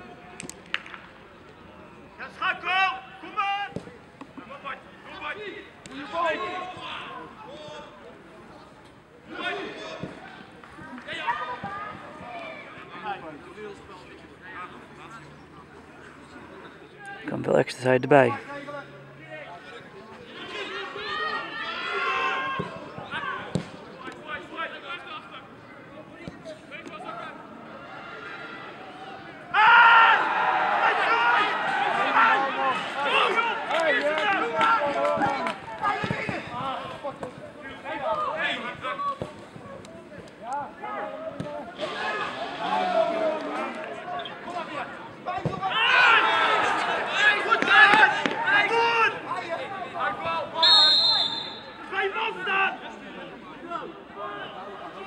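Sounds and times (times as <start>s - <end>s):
footballers shouting: 1.7s - 8.2s, 9.2s - 13.6s, 20.2s - 55.0s.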